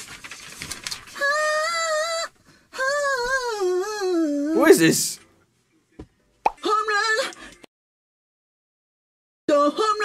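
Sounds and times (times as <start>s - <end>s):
man singing high-pitched: 9.5s - 10.0s.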